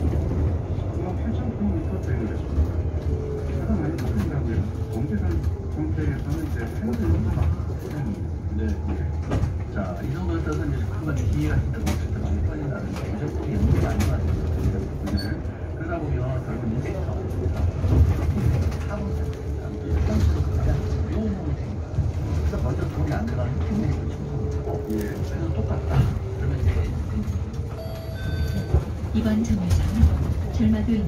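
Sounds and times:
low rumble of bus road noise: 0.0s - 31.0s
electronic chime: 27.8s - 28.7s.

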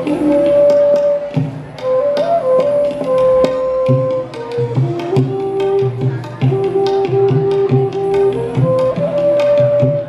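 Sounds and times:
bamboo flute long notes: 0.0s - 10.0s
tabla strokes: 0.0s - 10.0s.

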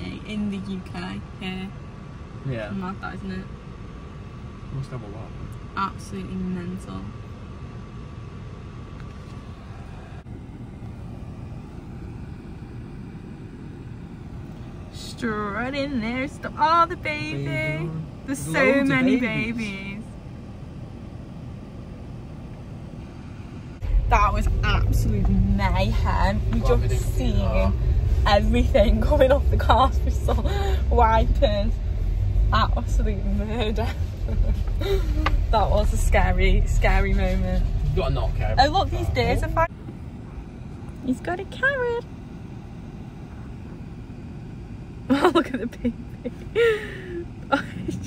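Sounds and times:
car cabin rumble: 0.0s - 48.0s.

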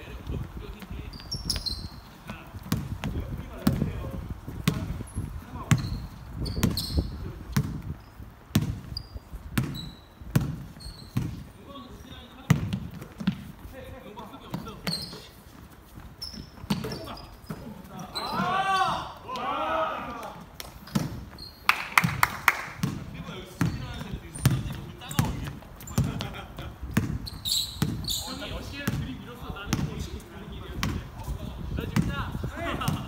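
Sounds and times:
sneakers squeaking on floor: 0.0s - 19.2s, 20.7s - 22.2s, 22.8s - 30.1s
basketball bouncing on hardwood: 2.6s - 4.0s, 5.6s - 6.9s, 7.5s - 7.9s, 8.5s - 8.9s, 9.6s - 11.4s, 12.5s - 13.5s, 26.9s - 28.1s, 28.8s - 30.0s
voices calling out: 16.2s - 21.9s.

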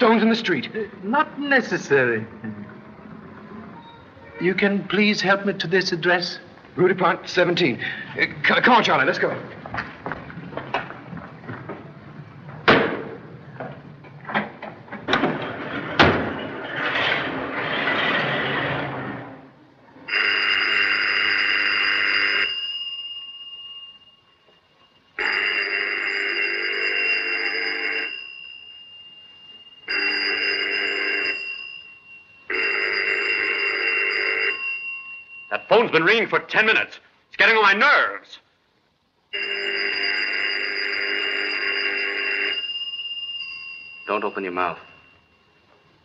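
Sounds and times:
telephone bell ringing: 20.1s - 24.6s, 25.2s - 36.0s, 39.3s - 46.0s.

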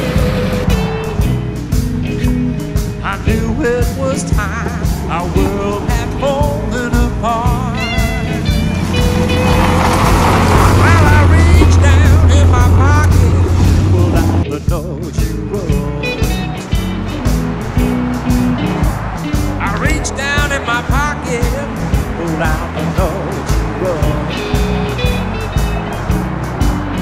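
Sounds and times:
blues rock band playing: 0.0s - 27.0s
car engine approaching: 0.0s - 27.0s.

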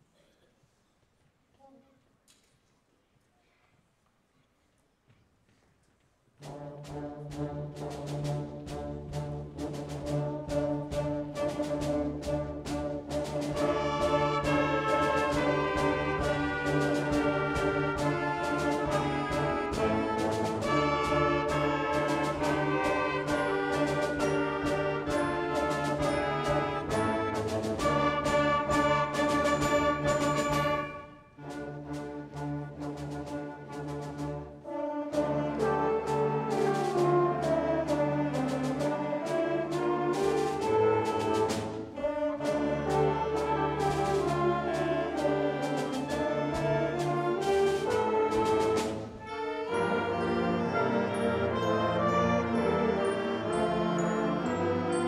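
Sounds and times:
wind band playing: 6.4s - 55.0s.

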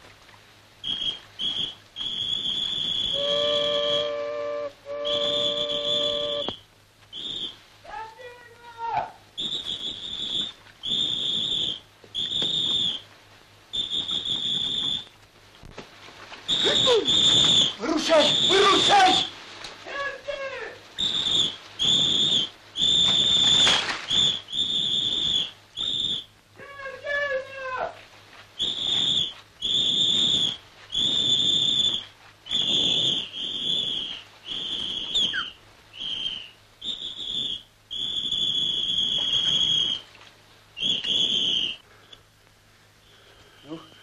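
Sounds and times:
shrill whistle blasts: 0.8s - 8.8s, 9.4s - 13.1s, 13.7s - 15.1s, 16.5s - 19.3s, 21.0s - 27.6s, 28.6s - 40.1s, 40.8s - 41.9s.

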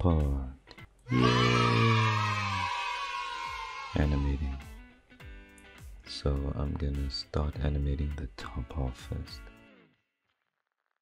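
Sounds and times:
music: 0.0s - 10.9s
drawn-out vocal no: 1.1s - 3.0s.

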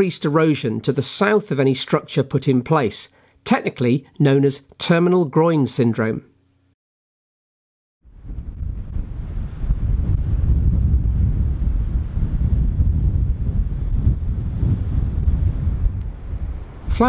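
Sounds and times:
wind buffeting microphone: 8.1s - 17.0s.

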